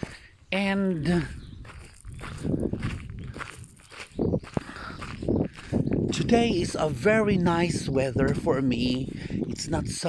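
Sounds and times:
footsteps on gravel: 0.0s - 10.0s
low rumbling microphone noise: 0.0s - 10.0s.

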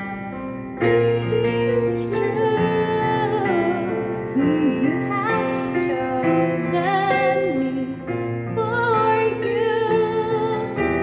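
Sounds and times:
keyboard accompaniment: 0.0s - 11.0s
woman singing: 0.0s - 11.0s.

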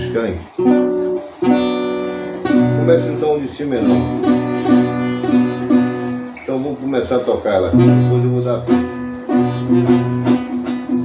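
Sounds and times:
classical guitar picking: 0.0s - 11.0s.

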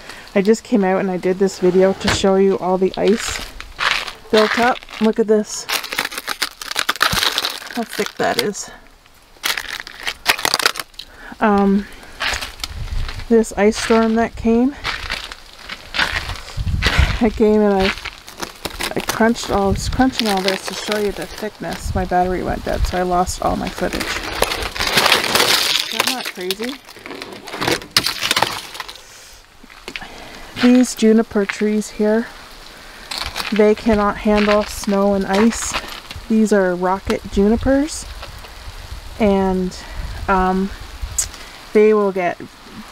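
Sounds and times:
ice crunching and cracking: 2.0s - 38.8s.

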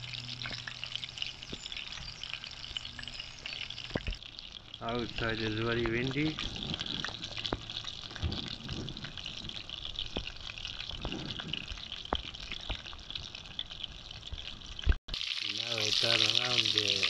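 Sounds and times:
fish sizzling in oil: 0.0s - 17.0s
wind buffeting microphone: 5.1s - 12.8s.

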